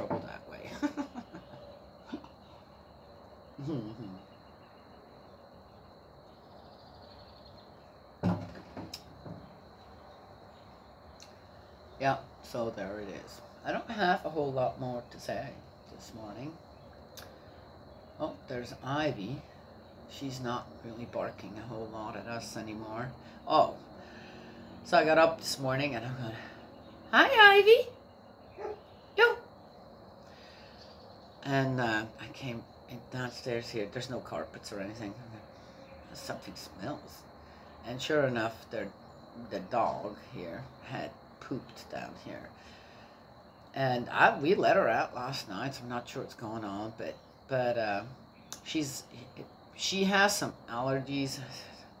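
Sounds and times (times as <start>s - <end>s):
faint steady background noise: 0.0s - 52.0s
dog barking: 28.6s - 28.9s.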